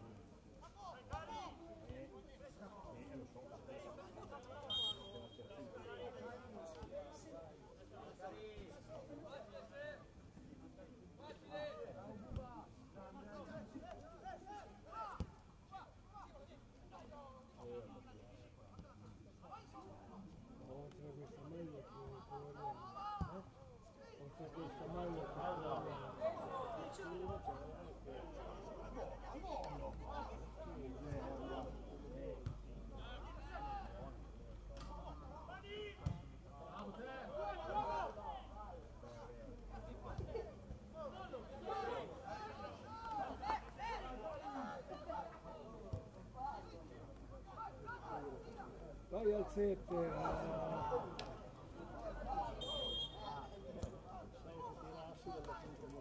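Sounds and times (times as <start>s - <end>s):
people calling out: 52.0s - 53.6s.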